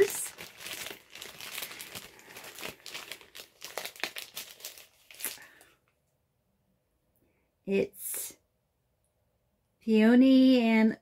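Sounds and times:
plastic wrapping crinkling: 0.0s - 5.8s.

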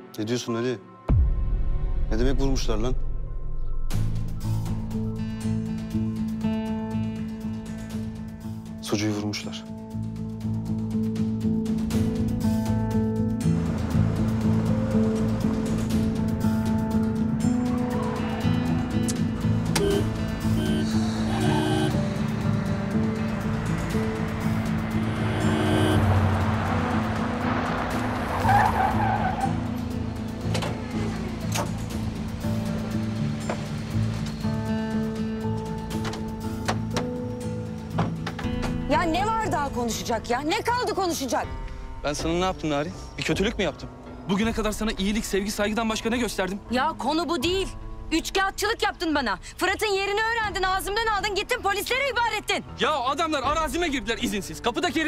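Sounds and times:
background music: 0.0s - 55.0s
car engines: 13.4s - 38.9s
tyres squealing: 28.2s - 29.8s.

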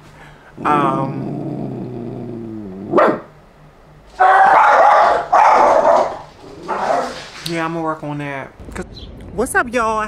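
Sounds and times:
dog barking: 2.9s - 3.3s, 4.2s - 7.3s.

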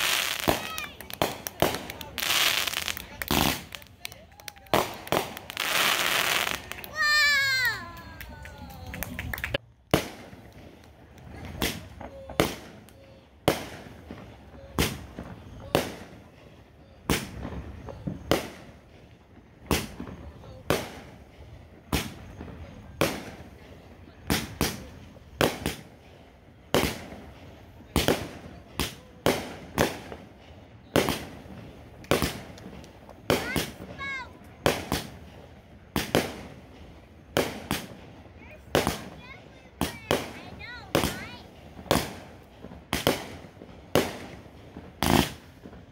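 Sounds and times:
firework shells bursting: 0.0s - 16.2s, 17.1s - 45.9s.

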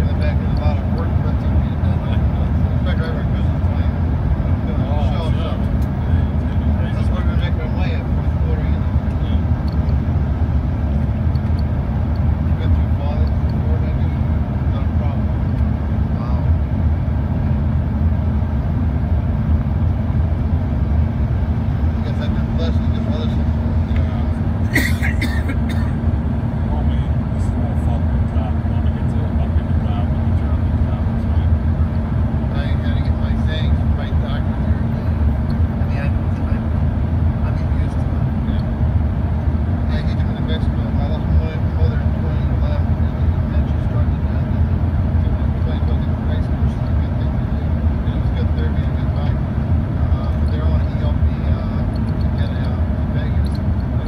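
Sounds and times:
jet engines droning in cabin: 0.0s - 54.0s
low hum: 0.0s - 54.0s.

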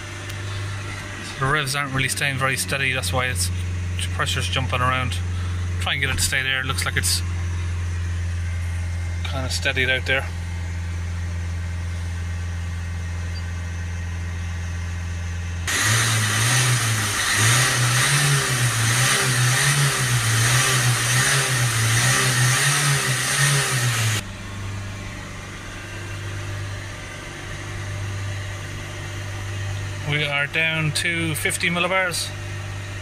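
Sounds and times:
diesel engine revving: 0.0s - 13.3s, 13.9s - 33.0s.

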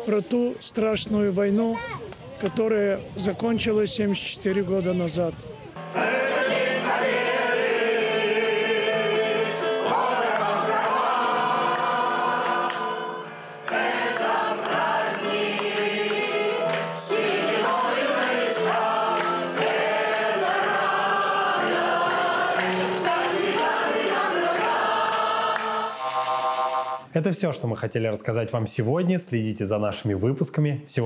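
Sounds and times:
mixed choir singing: 5.8s - 27.0s.

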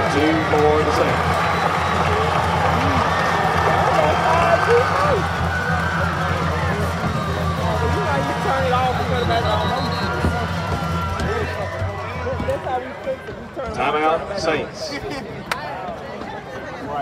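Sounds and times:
crowd shouting: 0.0s - 13.8s.

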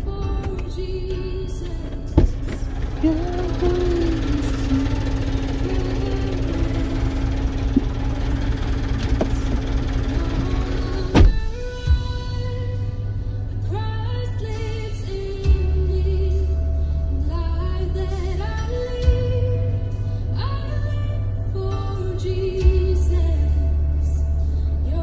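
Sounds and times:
low rumble: 0.0s - 21.1s
music playing: 0.0s - 25.0s.

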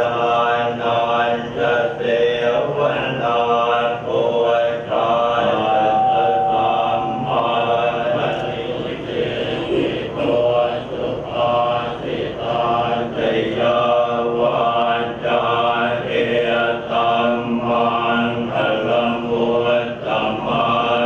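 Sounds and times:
group chanting in unison: 0.0s - 21.0s.

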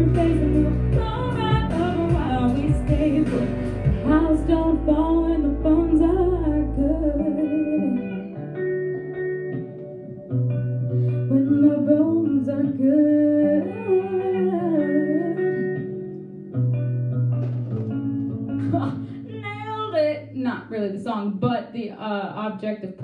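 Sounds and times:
woman singing into a microphone: 0.0s - 8.5s, 11.0s - 16.1s, 18.6s - 23.0s
backing music with bass line: 0.0s - 13.4s, 14.8s - 20.6s.

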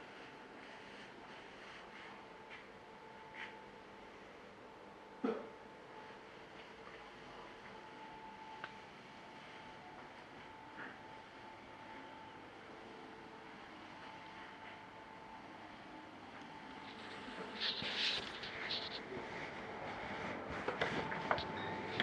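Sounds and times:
quiet steady hum: 0.0s - 22.0s.

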